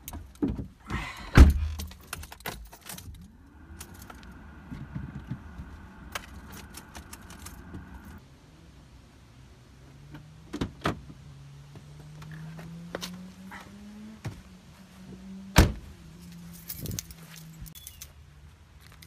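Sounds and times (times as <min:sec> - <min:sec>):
car keys jangling: 0:01.6 - 0:04.3, 0:06.1 - 0:08.2, 0:16.2 - 0:18.2.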